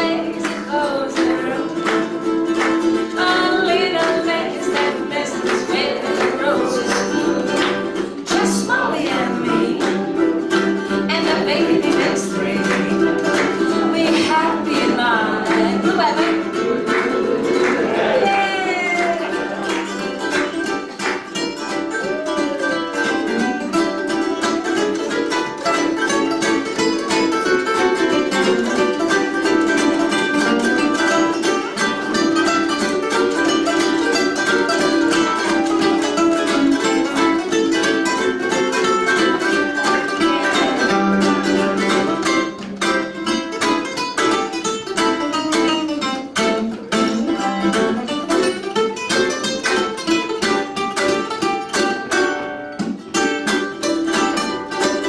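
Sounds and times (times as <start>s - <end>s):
ukuleles strummed and picked: 0.0s - 55.0s.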